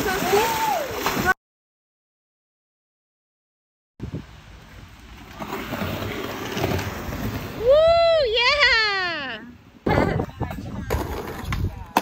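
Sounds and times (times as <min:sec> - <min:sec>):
skateboard wheels rolling on concrete: 0:04.0 - 0:12.0
high-pitched whooping cheer: 0:07.6 - 0:09.4.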